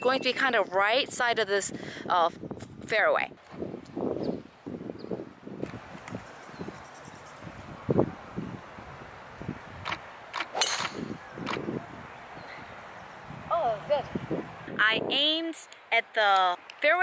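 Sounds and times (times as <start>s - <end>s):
golf club striking ball: 10.4s - 11.2s.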